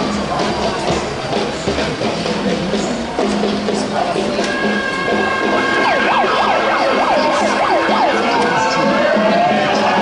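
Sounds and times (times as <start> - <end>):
siren yelping and wailing: 4.6 - 10.0.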